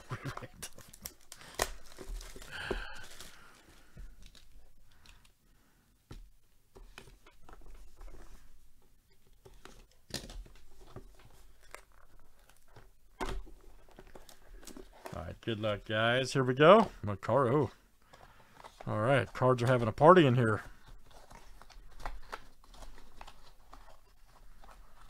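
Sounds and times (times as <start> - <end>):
plastic shrink wrap crackling: 0.2 - 5.3.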